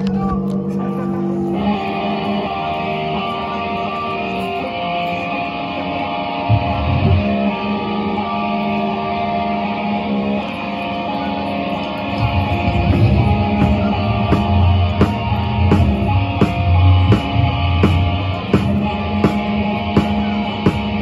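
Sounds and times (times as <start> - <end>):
gritty guitar layer: 0.0 - 21.0
live band amplified guitar: 0.0 - 21.0.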